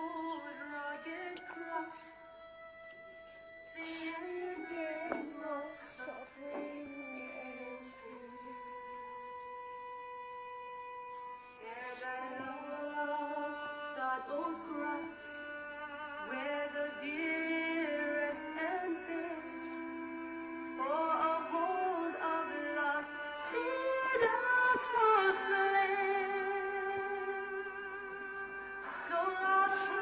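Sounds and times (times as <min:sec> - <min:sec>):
woman singing mournful song: 0:00.0 - 0:02.3, 0:03.8 - 0:09.4, 0:11.5 - 0:30.0.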